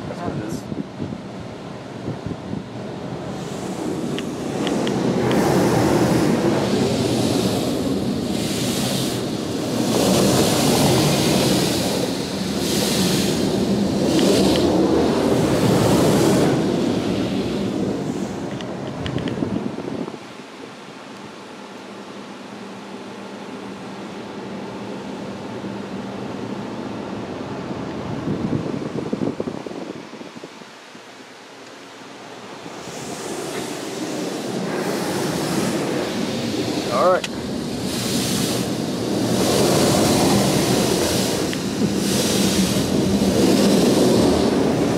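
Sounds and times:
water spray hitting car glass: 3.4 - 18.8, 32.7 - 44.9.

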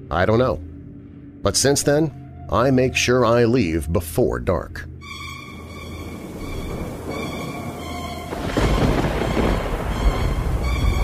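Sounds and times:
dark background music: 0.0 - 11.0
thunder rumble with rain: 6.0 - 11.0.

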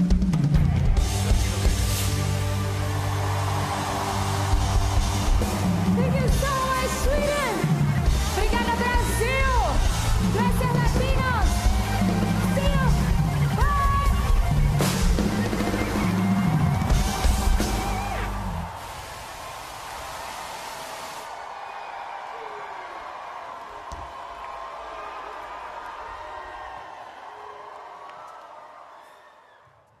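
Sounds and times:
funk-pop concert music: 0.0 - 19.8
crowd cheering: 0.0 - 30.0.

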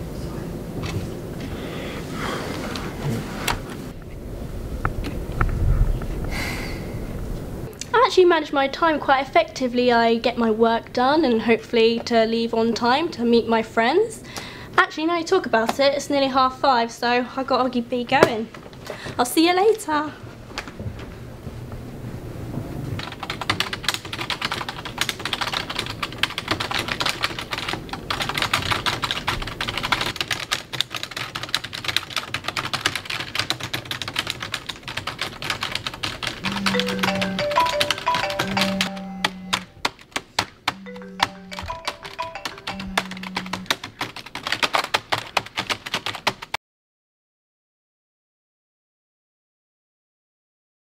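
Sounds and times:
rapid keyboard typing: 23.0 - 46.6.

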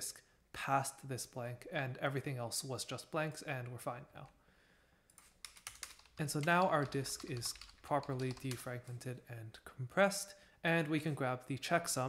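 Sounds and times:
computer keyboard typing: 5.2 - 8.8.

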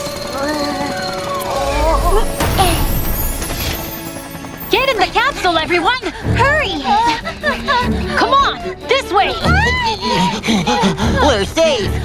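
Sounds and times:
melodic music: 1.1 - 10.4
deep rumble: 1.4 - 4.0.

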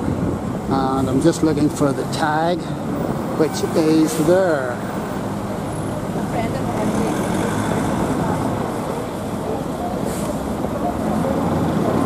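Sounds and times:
vehicles passing close by: 0.0 - 12.0.

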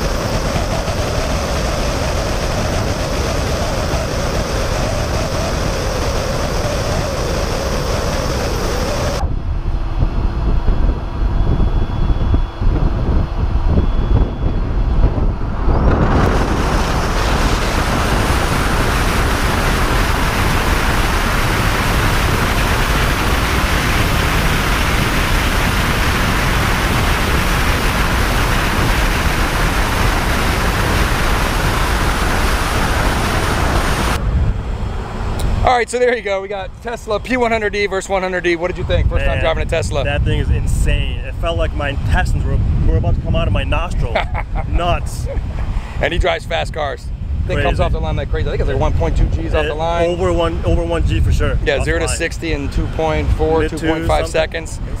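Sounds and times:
tyre and road noise: 0.0 - 11.5
wind rushing over camera: 0.0 - 35.7, 36.6 - 55.0
muffled rumble: 0.0 - 37.7, 38.3 - 55.0.

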